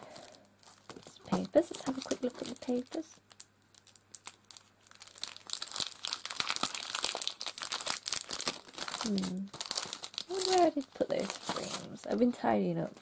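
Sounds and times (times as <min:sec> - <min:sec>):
cellophane sleeve crinkling: 0:00.0 - 0:12.3.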